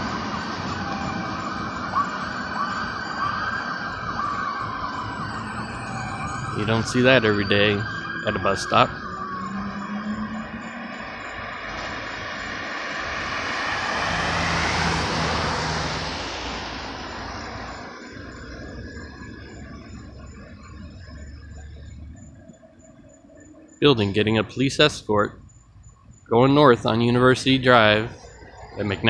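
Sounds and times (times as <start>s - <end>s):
vehicle passing by: 0.0s - 22.3s
low engine hum: 0.0s - 29.0s.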